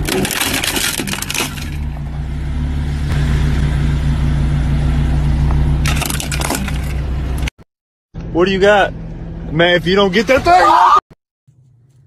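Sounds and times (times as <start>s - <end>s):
car engine running low: 0.0s - 7.5s.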